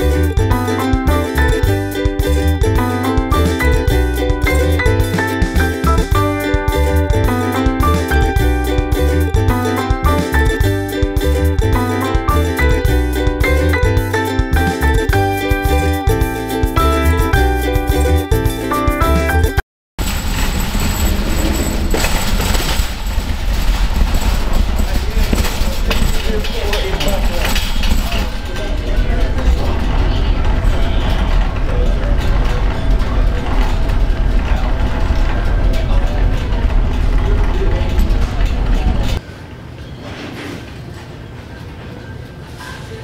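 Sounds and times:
store room tone: 0.0 - 43.0
shopping cart rattling on hard floor: 20.0 - 39.2
indistinct voices: 24.3 - 39.2.

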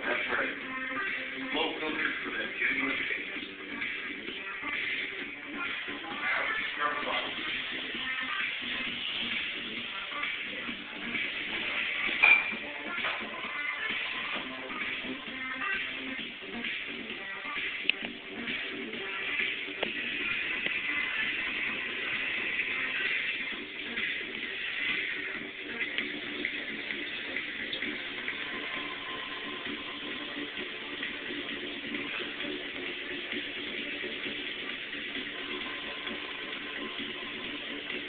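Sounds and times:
background music: 0.0 - 38.0.

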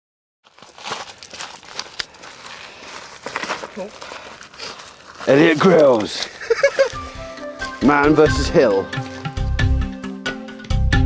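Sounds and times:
twigs snapping and crackling: 0.4 - 7.0
footsteps through dry undergrowth: 0.4 - 9.7.

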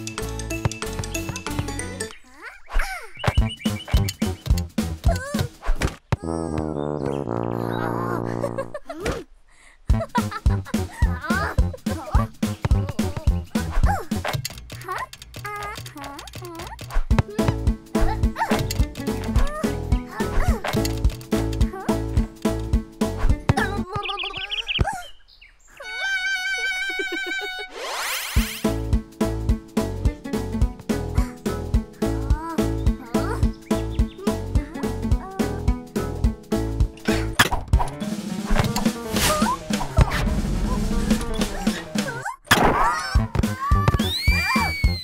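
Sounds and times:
cartoon soundtrack music: 0.0 - 2.2, 3.2 - 5.6, 6.2 - 9.0, 9.9 - 24.6, 25.8 - 45.0
childlike vocal sound: 6.2 - 6.6, 14.8 - 18.6, 32.1 - 33.4.

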